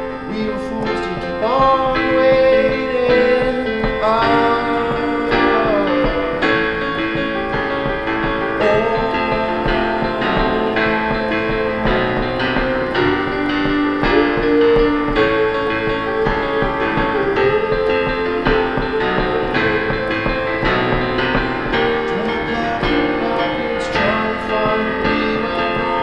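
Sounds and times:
man singing long notes: 0:00.0 - 0:26.0
piano playing chords: 0:00.0 - 0:26.0.

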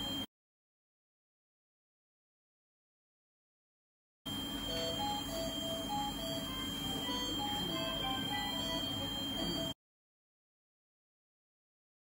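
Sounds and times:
steady high tone: 0:04.3 - 0:09.8
simple melody of short notes: 0:04.6 - 0:09.8.

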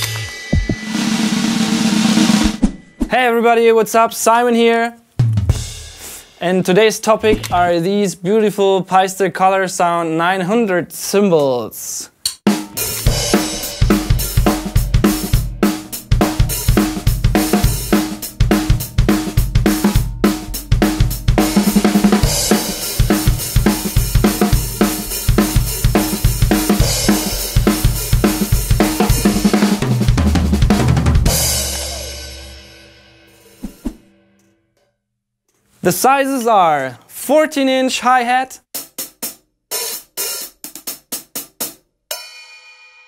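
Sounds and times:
drum kit rock groove: 0:00.0 - 0:03.1, 0:05.2 - 0:07.9, 0:12.4 - 0:34.1, 0:38.6 - 0:42.3
low drum hit ringing: 0:12.7 - 0:32.1.

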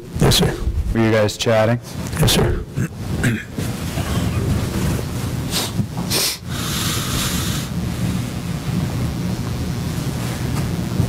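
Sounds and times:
low hum and rumble: 0:00.0 - 0:11.0.

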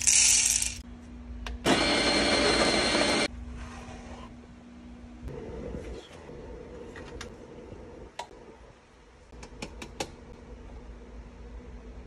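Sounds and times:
coffee beans rattling into hopper: 0:00.0 - 0:00.8.

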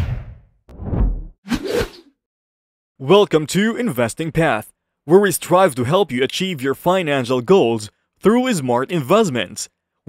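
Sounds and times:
deep low thud: 0:00.0 - 0:01.3.

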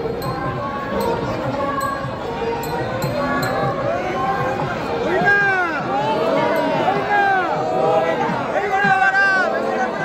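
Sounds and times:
crowd voices: 0:00.0 - 0:10.0
music: 0:00.0 - 0:10.0
procession drums beating: 0:00.0 - 0:10.0.

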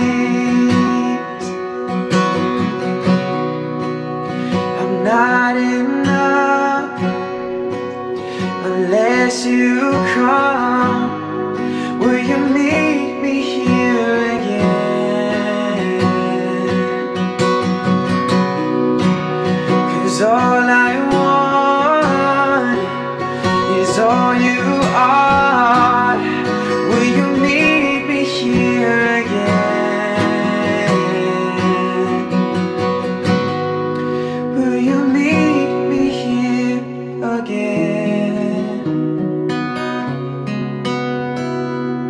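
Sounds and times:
man singing: 0:00.0 - 0:02.2, 0:04.4 - 0:17.9, 0:19.3 - 0:39.3
acoustic guitar: 0:00.0 - 0:42.0.

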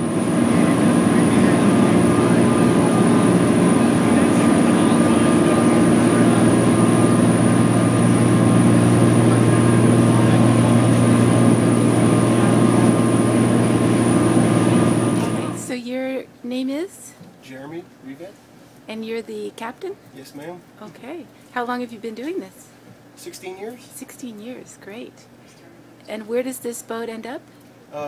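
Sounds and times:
churning wake rushing: 0:00.0 - 0:15.6
diesel engines droning: 0:00.0 - 0:15.7.

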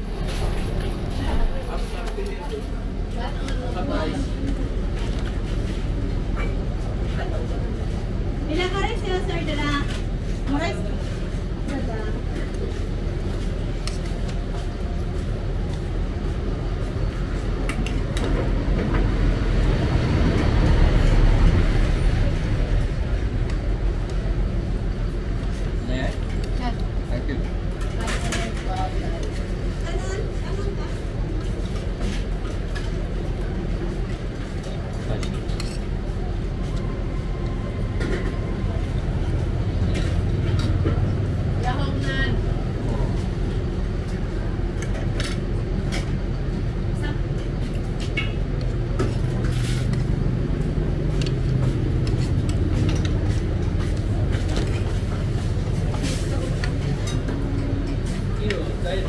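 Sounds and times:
low rumble of bus engines: 0:00.0 - 0:59.0.

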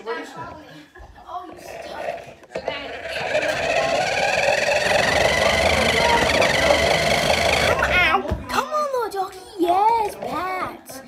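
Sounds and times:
toy truck motor whining: 0:01.6 - 0:08.1.

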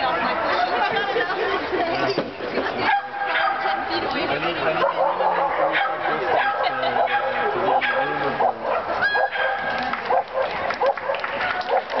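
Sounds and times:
people's voices: 0:00.0 - 0:12.0
dogs barking and yipping: 0:02.8 - 0:12.0.

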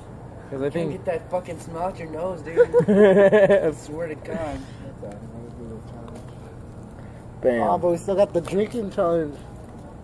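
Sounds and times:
people murmuring: 0:00.3 - 0:10.0.

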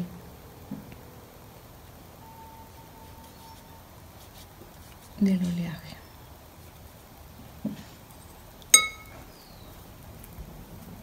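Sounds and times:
glass container clinking: 0:08.7 - 0:09.2.

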